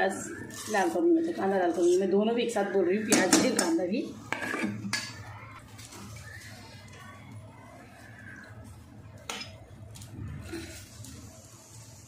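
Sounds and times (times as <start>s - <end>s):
metal kitchen utensils clinking: 9.3s - 9.6s.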